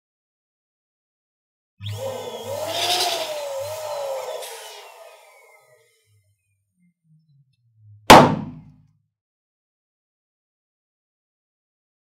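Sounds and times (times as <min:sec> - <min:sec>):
balloon popping: 0:08.1 - 0:08.7.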